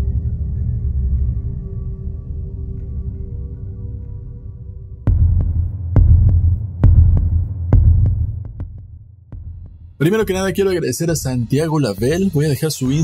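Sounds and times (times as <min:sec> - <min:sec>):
deep heartbeat sound effect: 0:05.1 - 0:10.6.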